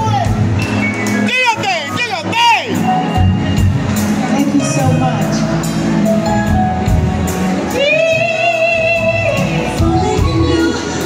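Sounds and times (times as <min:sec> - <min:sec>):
band playing: 0:00.0 - 0:11.0
woman singing: 0:07.7 - 0:11.0.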